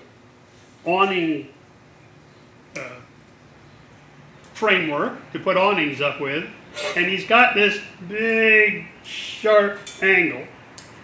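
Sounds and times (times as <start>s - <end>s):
man saying uh: 6.8s - 7.3s.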